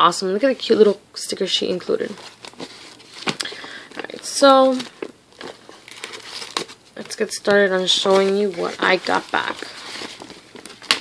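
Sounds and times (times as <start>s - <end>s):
plastic bags crinkling: 2.0s - 11.0s.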